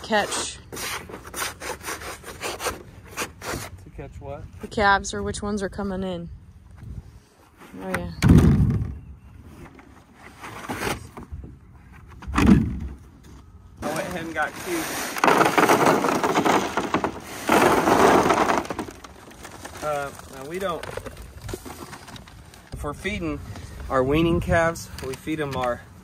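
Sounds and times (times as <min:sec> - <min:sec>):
pellets pouring into plastic trough: 0:13.9 - 0:21.0.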